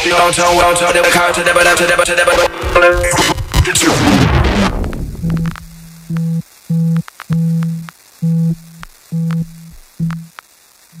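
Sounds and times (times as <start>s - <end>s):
dubstep track: 0.0s - 6.2s
sharp clicks: 4.9s - 10.5s
low synth tone beeping: 5.2s - 10.3s.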